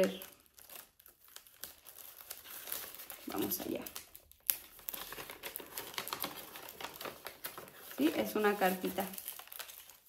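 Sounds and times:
paper envelope crinkling: 0.0s - 10.0s.

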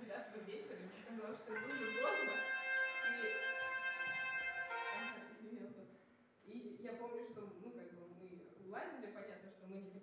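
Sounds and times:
voices: 0.0s - 5.7s
sustained high note: 1.5s - 5.3s.

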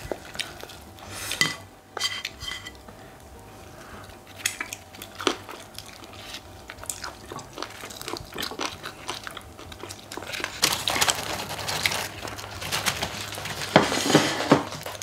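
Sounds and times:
biting and chewing crispy chicken: 0.0s - 1.1s, 4.1s - 15.0s.

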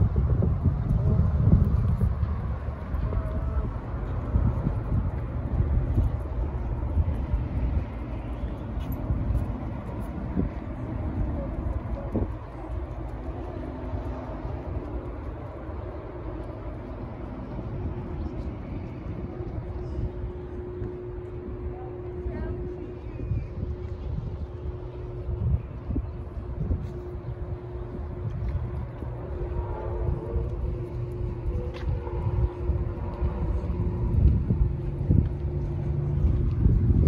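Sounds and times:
steady low hum: 0.0s - 37.0s
wind buffeting microphone: 0.0s - 37.0s.

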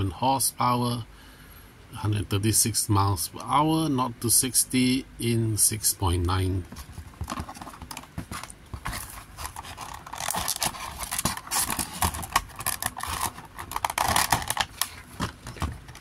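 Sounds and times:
plastic packaging crackling: 6.7s - 16.0s
scraping against cardboard box: 6.7s - 16.0s.

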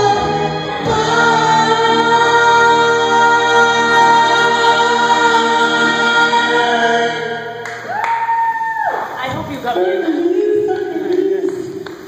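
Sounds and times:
recorded backing track: 0.0s - 8.0s.

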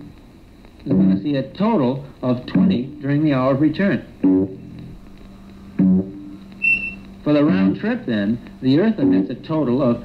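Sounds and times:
plucked guitar music: 4.2s - 5.1s, 5.8s - 7.8s
short high beep: 6.6s - 7.0s.

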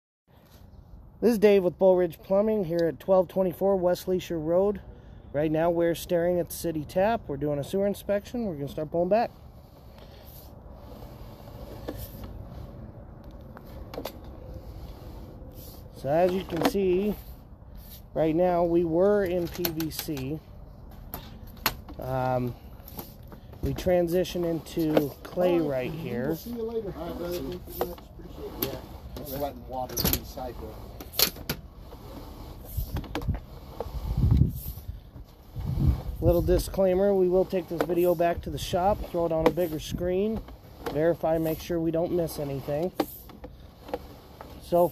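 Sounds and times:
sharp clicks and knocks: 19.2s - 22.0s.

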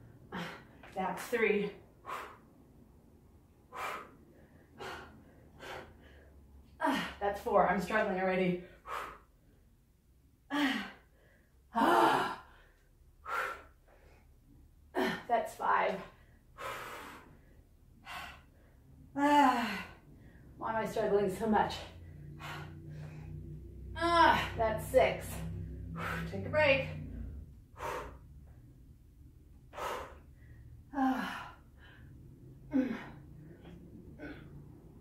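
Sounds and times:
woman breathing hard: 1.8s - 2.8s, 3.5s - 7.2s, 8.6s - 9.7s, 10.5s - 15.3s, 16.0s - 20.6s, 21.8s - 24.6s, 25.2s - 35.0s
woman groaning: 11.8s - 12.4s, 24.0s - 24.8s, 32.7s - 33.2s.

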